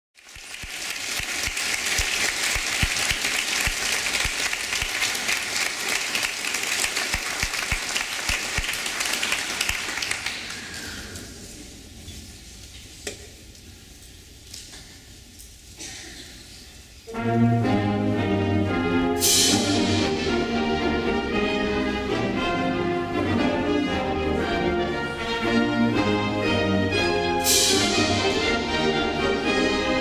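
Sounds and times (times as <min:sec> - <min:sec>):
audience applauding: 0:00.2 - 0:11.2.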